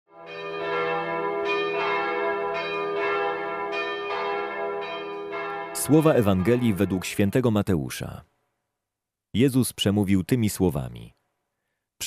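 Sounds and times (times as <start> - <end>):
bells ringing: 0.1 - 7.4
man speaking: 5.8 - 8.3, 9.4 - 11.2.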